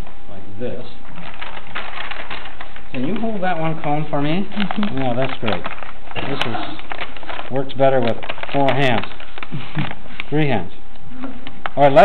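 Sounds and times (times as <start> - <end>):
stiff paper crackling and rustling: 1.0 - 10.6.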